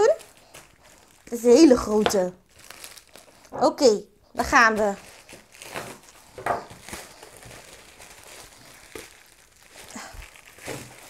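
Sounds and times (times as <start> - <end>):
plastic crinkling: 0.0 - 11.0
knife cutting plastic mailer: 5.3 - 7.6, 10.5 - 11.0.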